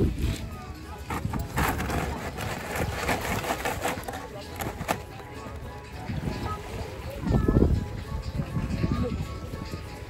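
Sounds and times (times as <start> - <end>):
murmur of diners talking: 0.0 - 10.0.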